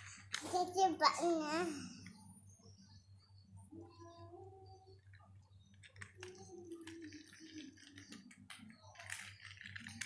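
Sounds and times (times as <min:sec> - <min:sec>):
plastic toys clicking and rattling: 0:05.0 - 0:10.0.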